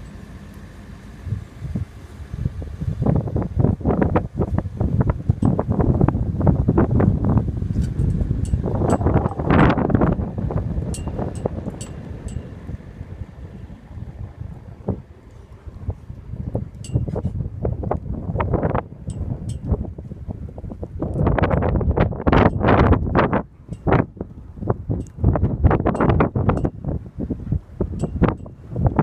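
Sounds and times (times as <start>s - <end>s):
wind buffeting microphone: 1.2s - 29.0s.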